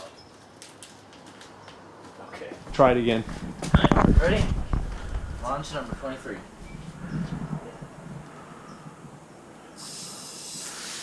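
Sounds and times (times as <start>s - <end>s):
water spraying under pressure: 9.7s - 11.0s.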